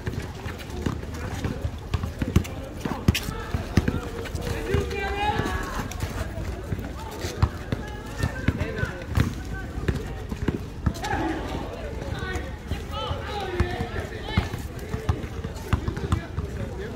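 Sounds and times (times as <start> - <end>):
basketball bouncing on asphalt: 0.0 - 5.7, 6.5 - 11.2, 13.4 - 16.9
sneaker footfalls and scuffs: 0.0 - 12.4
people shouting: 10.9 - 14.5.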